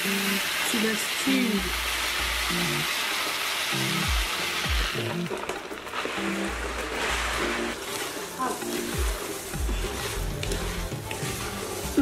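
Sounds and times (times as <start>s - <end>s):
stew sizzling in a pot: 0.0s - 12.0s
music with deep bass beat: 3.8s - 5.5s, 6.1s - 12.0s.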